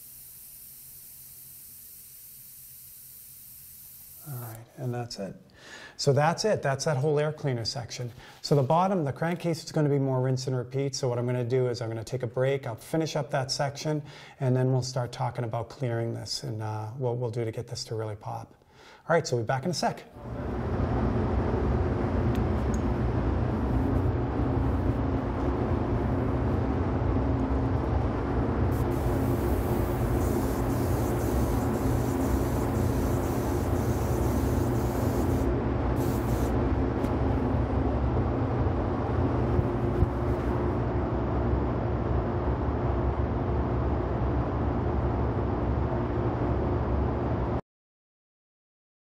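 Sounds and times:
spray gun hissing: 0.0 - 4.5, 28.7 - 36.6
ventilation humming: 0.0 - 47.6.

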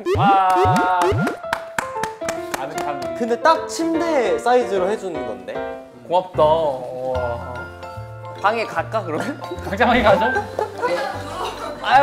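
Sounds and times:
playful plucked background music: 0.0 - 12.0.

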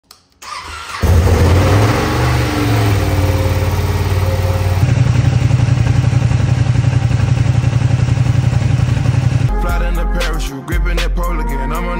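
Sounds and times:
motorcycle starter cranking: 0.4 - 4.8
motorcycle engine idling: 1.0 - 9.6.

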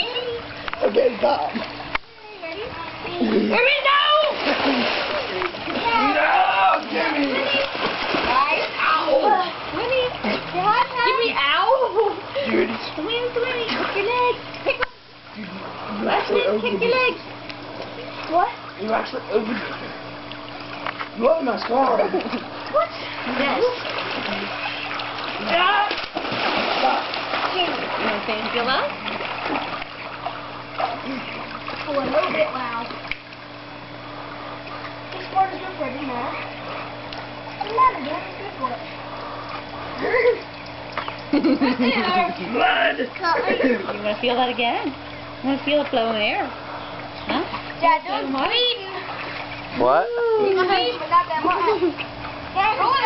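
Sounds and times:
pool water splashing: 0.0 - 53.0
steady low hum: 0.0 - 53.0
people shouting excitedly: 5.8 - 7.7, 25.4 - 26.0.

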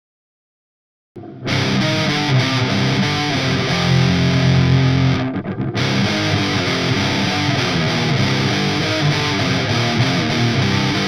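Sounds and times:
distorted electric guitar riff: 1.2 - 11.0.

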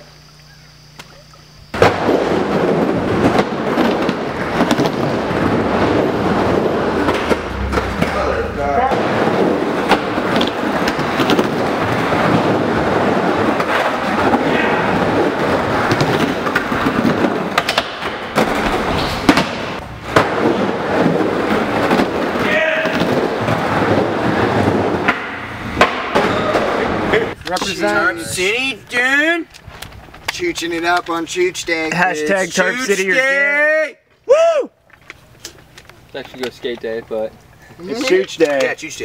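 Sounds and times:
skateboard wheels rolling: 1.8 - 28.7.

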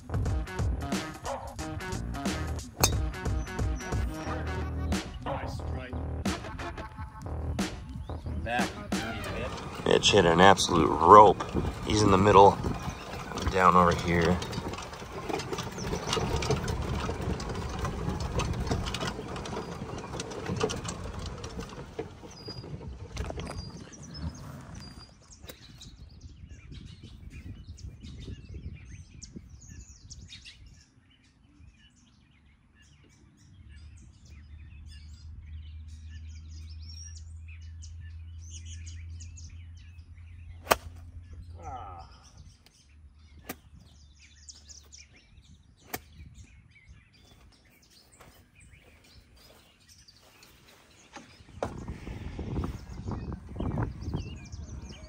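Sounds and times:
golf cart driving: 0.0 - 26.6, 29.0 - 55.0
birds chirping: 0.0 - 55.0
rushing wind noise: 7.6 - 30.7, 51.1 - 55.0.

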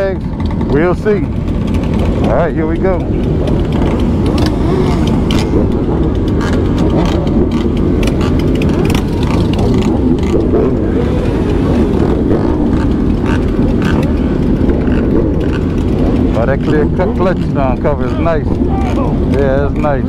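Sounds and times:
motorcycle engines running: 0.0 - 20.0.

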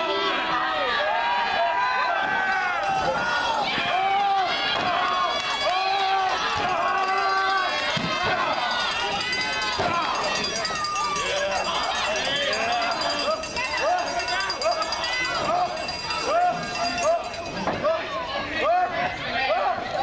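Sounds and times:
crowd shouting and cheering: 0.0 - 20.0.

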